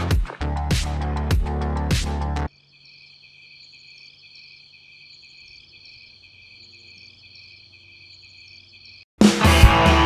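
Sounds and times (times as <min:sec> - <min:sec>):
crickets chirping: 0:02.5 - 0:09.1.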